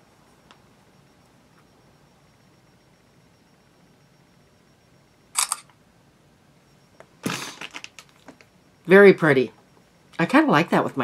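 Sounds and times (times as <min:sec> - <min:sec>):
faint room tone: 0:00.0 - 0:11.0
camera shutter click: 0:05.4 - 0:05.7.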